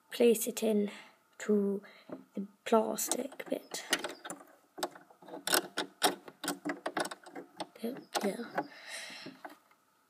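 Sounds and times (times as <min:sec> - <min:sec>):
metal presser foot clicking: 0:03.8 - 0:09.6.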